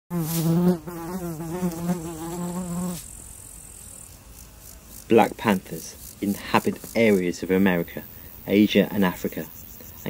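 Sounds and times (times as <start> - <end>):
loud insect-like buzz: 0.1 - 10.0.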